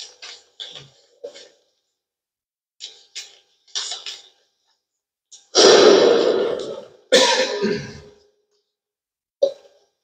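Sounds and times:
loud coughs echoing: 0:07.1 - 0:08.2.

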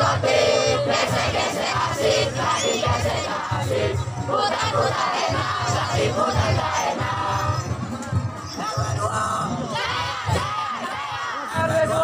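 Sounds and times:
group chanting and shouting: 0:00.0 - 0:12.0.

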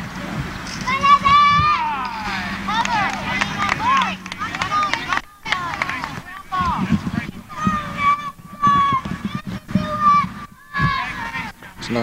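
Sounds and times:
murmur of adult voices: 0:00.0 - 0:12.0
girls shouting high-pitched: 0:00.8 - 0:11.6.

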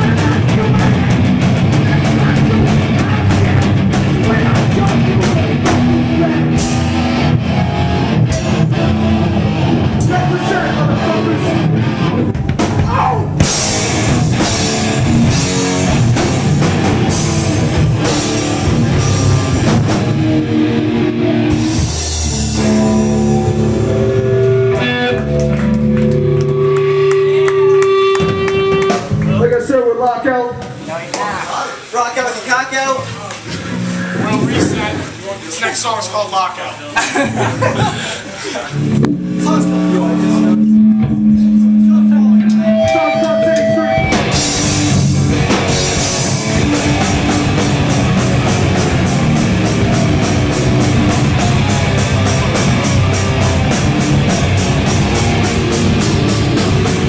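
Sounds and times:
punk band playing loud: 0:00.0 - 0:29.9, 0:32.9 - 0:35.9, 0:37.1 - 0:57.0
voices talking: 0:29.3 - 0:44.1.

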